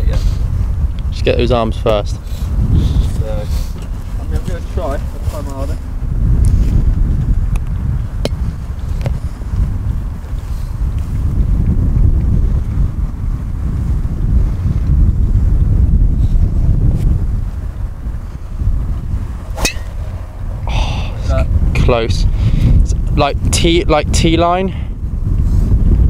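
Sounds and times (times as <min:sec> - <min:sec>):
wind buffeting microphone: 0:00.0 - 0:26.0
golf club striking ball: 0:19.4 - 0:21.2.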